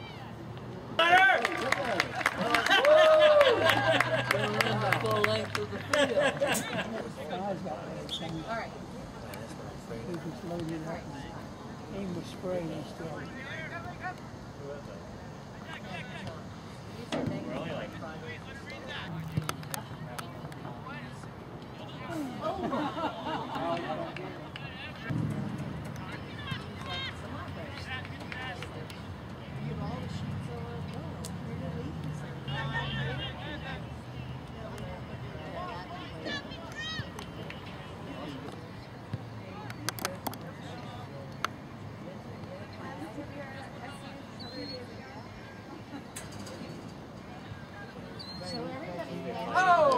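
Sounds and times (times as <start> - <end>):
outdoor background noise: 0.0 - 49.9.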